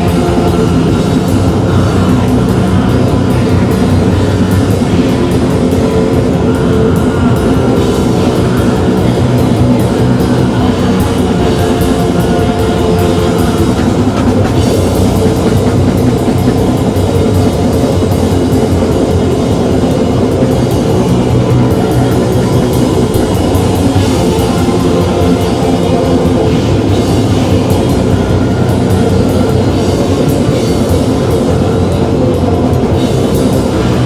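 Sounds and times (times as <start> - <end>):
distorted electric guitars: 0.0 - 34.0
drum kit: 0.0 - 34.0.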